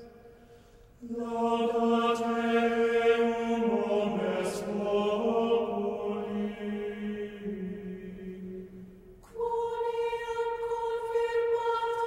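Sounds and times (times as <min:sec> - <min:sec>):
choir singing sacred music: 0:00.0 - 0:12.0.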